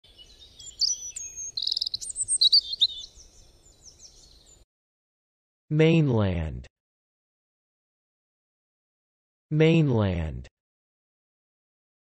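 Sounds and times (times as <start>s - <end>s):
birds chirping and singing: 0.1s - 4.6s.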